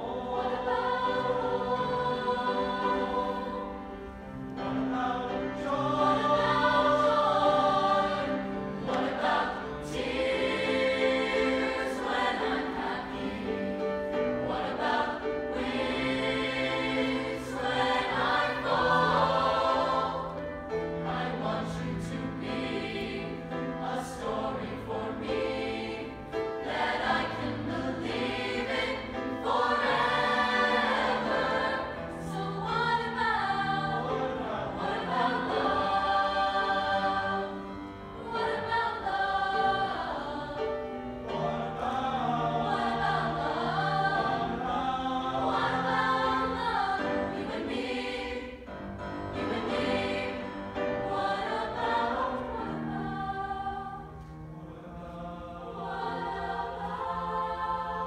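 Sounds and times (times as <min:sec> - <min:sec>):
mixed choir singing in harmony: 0:00.0 - 0:58.0.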